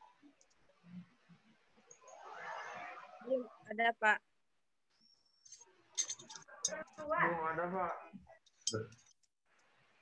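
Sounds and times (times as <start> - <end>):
faint broken speech: 5.0 - 9.2.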